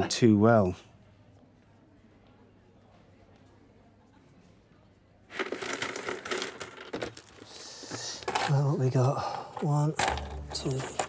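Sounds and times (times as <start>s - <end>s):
coins clattering on wooden table: 5.3s - 11.0s.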